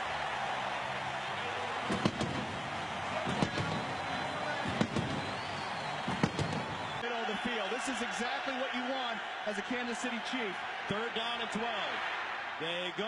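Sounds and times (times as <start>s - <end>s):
stadium crowd cheering: 0.0s - 13.0s
sharp knocks: 1.9s - 2.5s, 4.6s - 5.2s, 6.1s - 6.7s.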